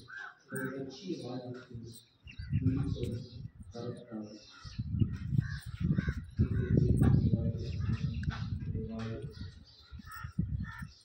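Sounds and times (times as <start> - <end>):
crows cawing: 0.0 - 1.7, 4.2 - 7.2, 9.8 - 11.0
low rumble on microphone: 4.8 - 9.6.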